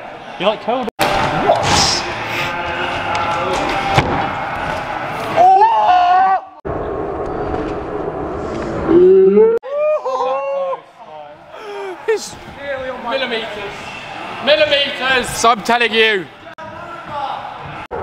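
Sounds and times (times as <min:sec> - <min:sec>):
echoing skatepark noise: 0:00.0 - 0:18.0
young men shouting and whooping: 0:01.4 - 0:06.6, 0:09.6 - 0:13.4.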